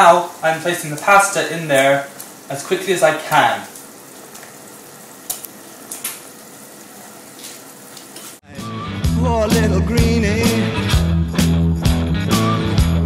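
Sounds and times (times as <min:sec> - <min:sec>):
water boiling with hiss: 0:00.0 - 0:08.4
rock song with singing: 0:08.4 - 0:13.0.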